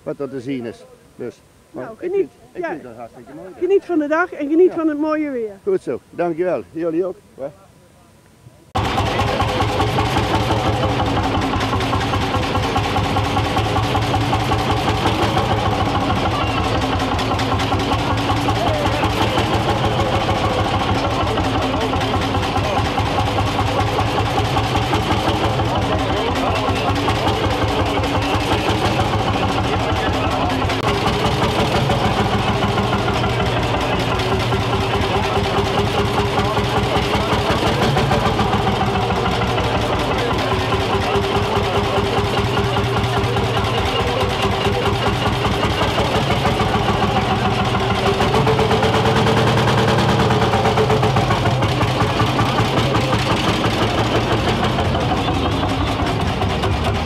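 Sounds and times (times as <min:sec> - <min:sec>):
tractor engine running: 0:08.8 - 0:57.0.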